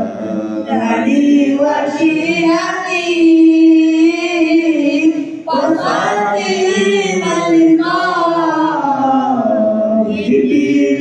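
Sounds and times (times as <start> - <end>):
man chanting: 0.0 - 2.5.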